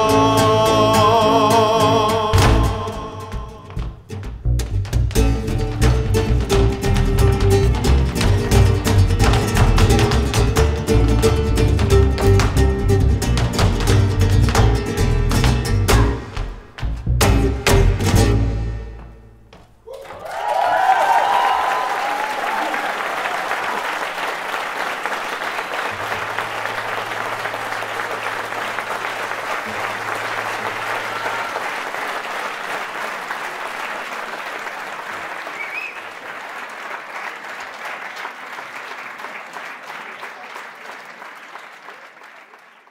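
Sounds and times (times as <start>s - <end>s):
cheers and whoops: 19.9s - 23.9s, 30.9s - 31.9s
audience applauding: 19.9s - 42.9s.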